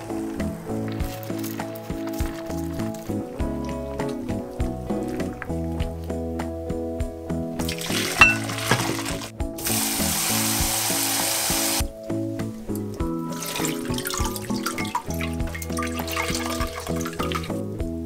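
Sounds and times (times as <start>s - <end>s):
background music: 0.0s - 18.0s
water splashing into glass bowl: 7.6s - 9.3s, 13.3s - 17.5s
running water stream: 7.6s - 17.7s.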